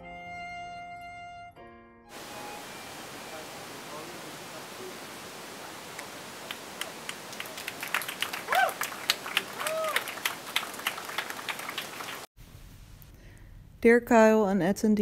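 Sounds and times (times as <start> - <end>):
audience clapping: 5.6 - 12.3
voiced whoops: 8.3 - 10.4.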